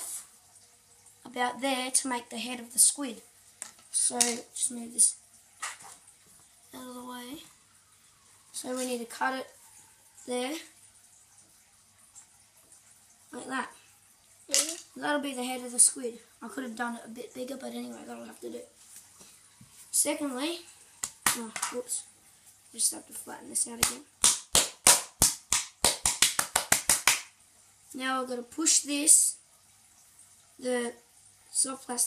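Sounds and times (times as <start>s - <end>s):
hand slapping play dough flat: 21.0s - 21.8s, 23.7s - 27.3s.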